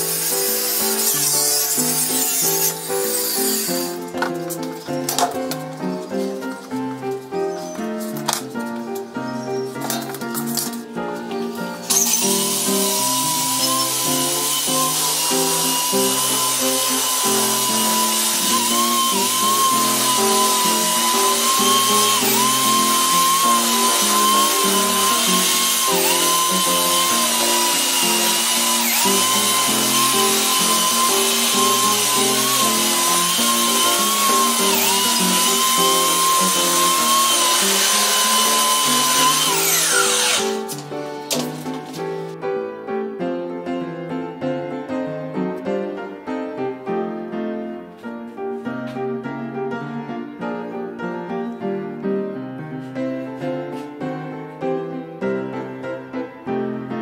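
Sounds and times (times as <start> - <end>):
belt sander whining on wood: 0.0 - 4.1, 11.8 - 40.8.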